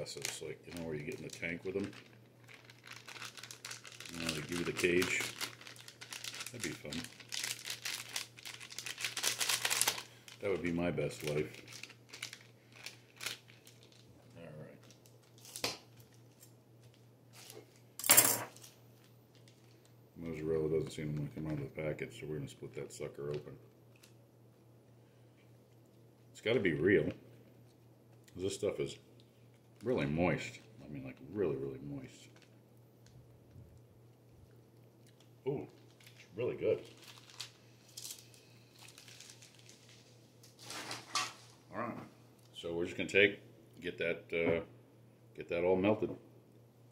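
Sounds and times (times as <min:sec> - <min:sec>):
person speaking: 0:00.0 - 0:02.0, 0:04.0 - 0:05.5, 0:06.4 - 0:07.2, 0:10.4 - 0:11.7
low electrical hum: 0:00.0 - 0:46.9
plastic ripping: 0:00.1 - 0:17.7, 0:35.0 - 0:41.6
plastic packet clicks and rustles: 0:00.1 - 0:17.8, 0:18.5 - 0:19.8, 0:35.0 - 0:41.6.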